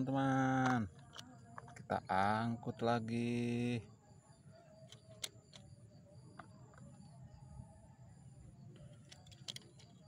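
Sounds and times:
faint plastic clicks: 0.6 - 1.9.

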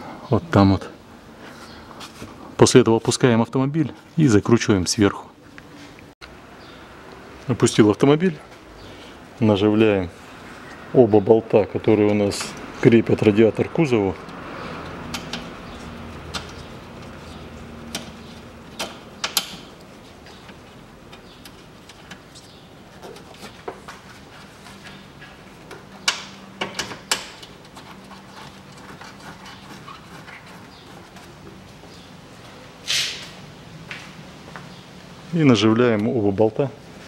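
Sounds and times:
metallic clicks and knocks: 25.7 - 28.8.

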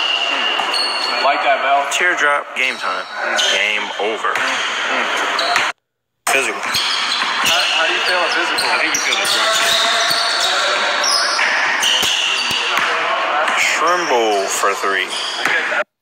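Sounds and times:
players shouting and chattering: 0.0 - 16.0.

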